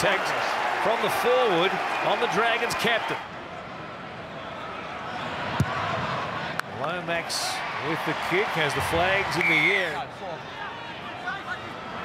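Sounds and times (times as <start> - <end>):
stadium crowd murmuring: 0.0 - 12.0.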